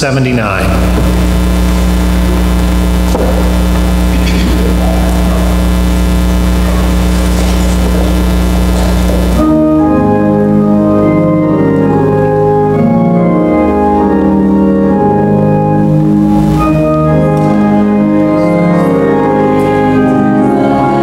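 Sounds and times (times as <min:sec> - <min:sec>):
church organ chords: 0:00.0 - 0:21.0
loud electrical hum: 0:00.0 - 0:21.0.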